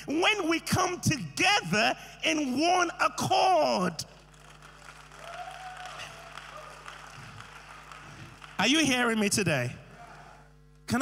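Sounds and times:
congregation applauding: 0:04.1 - 0:09.3.

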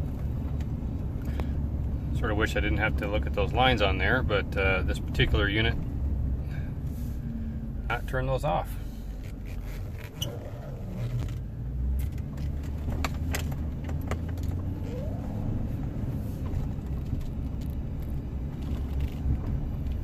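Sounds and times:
road and engine rumble: 0:00.0 - 0:20.0.

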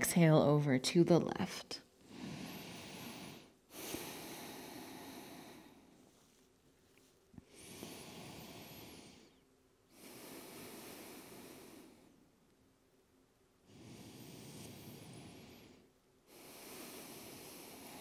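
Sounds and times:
soft breathing through the nose: 0:02.0 - 0:12.4, 0:13.6 - 0:18.0.

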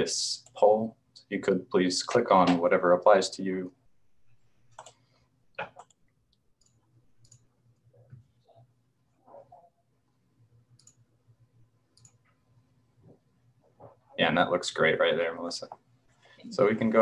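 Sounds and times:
low electrical hum: 0:00.0 - 0:17.0
computer mouse clicks: 0:04.6 - 0:08.7, 0:10.7 - 0:11.1, 0:11.9 - 0:12.4.

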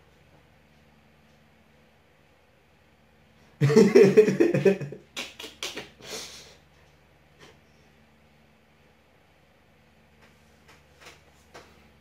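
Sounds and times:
man laughing: 0:03.6 - 0:06.0.

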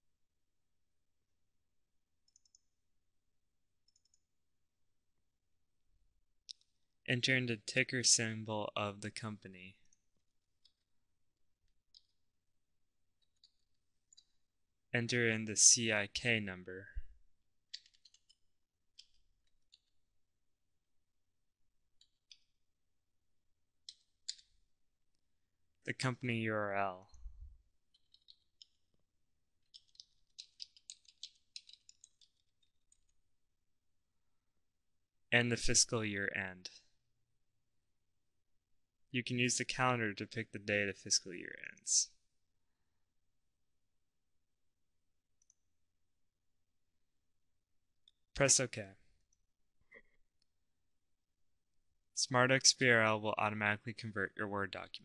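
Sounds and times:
computer mouse clicks: 0:02.2 - 0:02.7, 0:03.8 - 0:04.2, 0:11.9 - 0:12.2, 0:17.7 - 0:19.9, 0:23.8 - 0:24.6, 0:27.9 - 0:28.8, 0:29.6 - 0:33.2, 0:45.4 - 0:45.6.

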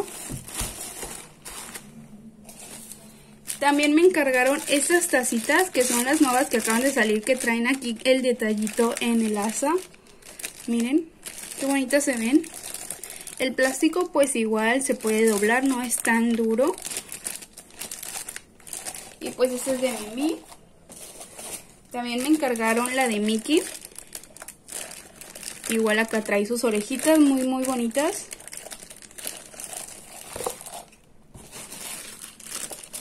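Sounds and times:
plastic bag crinkling: 0:00.0 - 0:33.0.

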